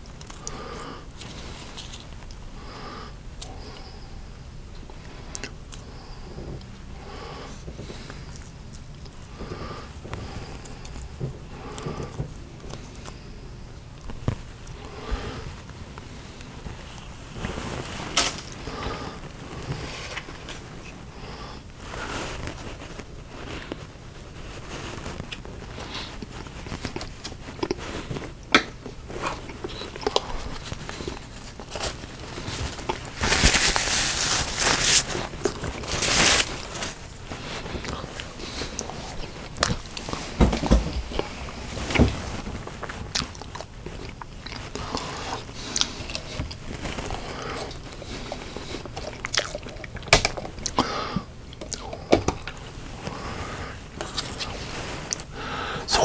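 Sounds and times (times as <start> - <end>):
chewing and biting food: 7.8 - 16.8, 25.2 - 53.4.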